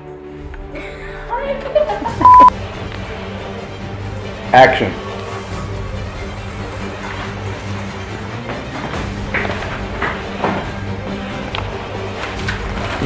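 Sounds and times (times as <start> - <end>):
background music with low notes: 0.0 - 13.0.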